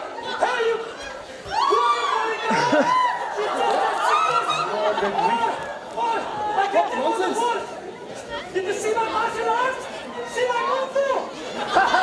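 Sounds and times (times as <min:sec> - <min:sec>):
many voices chattering: 0:00.0 - 0:12.0.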